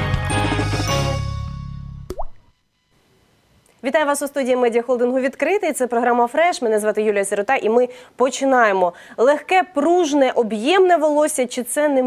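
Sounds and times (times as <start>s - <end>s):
rising bloop sound effect: 2.1s - 2.5s.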